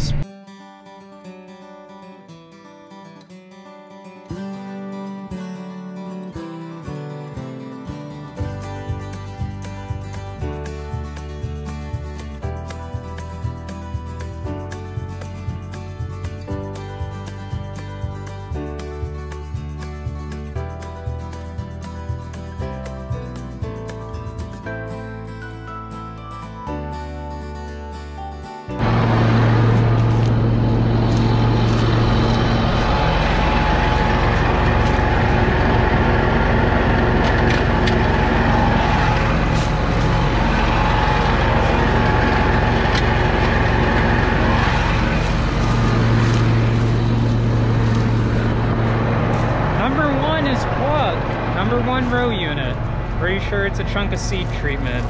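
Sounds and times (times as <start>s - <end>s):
music: 0.0s - 55.0s
tractor diesel engine humming: 28.8s - 55.0s
person speaking: 49.8s - 55.0s.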